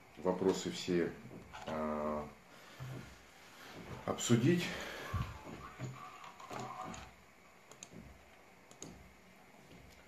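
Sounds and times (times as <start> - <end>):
faint clicks: 7.7 - 9.1.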